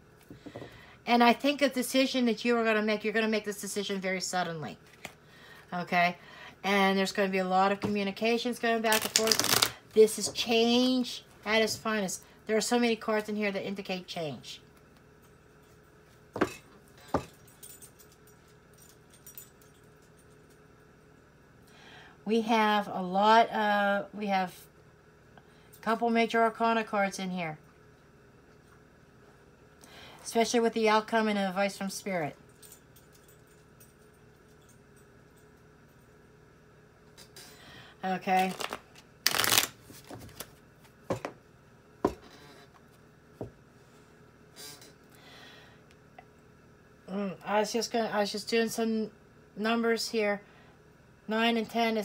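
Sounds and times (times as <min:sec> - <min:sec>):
cards rustling: 0:08.9 - 0:09.8, 0:38.3 - 0:40.6.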